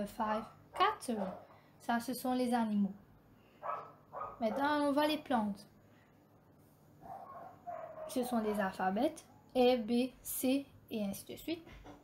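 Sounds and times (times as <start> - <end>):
dog barking faintly: 7.0 - 8.7.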